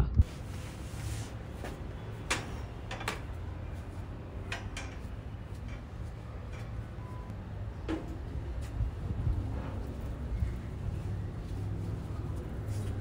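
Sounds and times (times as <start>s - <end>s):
low steady rumble: 3.3s - 13.0s.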